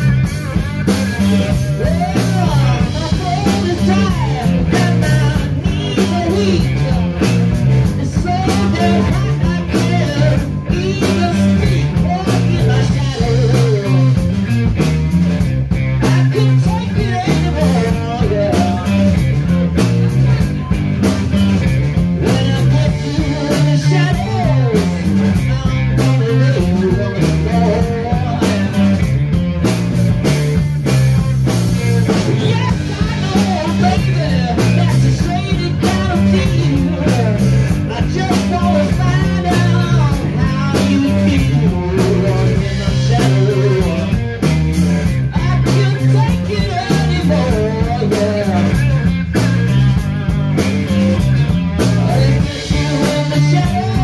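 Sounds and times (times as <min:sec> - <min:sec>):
bass guitar riff: 0:00.0 - 0:54.0
electric guitar: 0:00.0 - 0:54.0.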